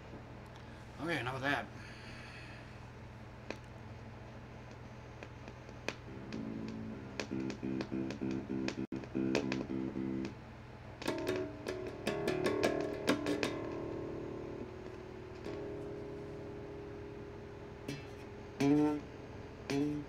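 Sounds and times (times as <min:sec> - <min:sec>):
electric bass guitar notes: 0:06.1 - 0:10.4, 0:11.0 - 0:20.0.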